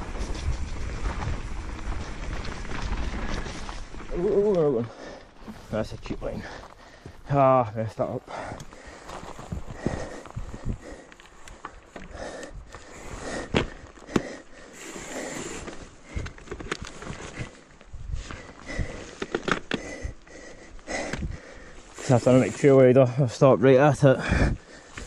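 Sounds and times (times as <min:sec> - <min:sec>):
man sniffing and breathing: 0:08.3 - 0:22.2.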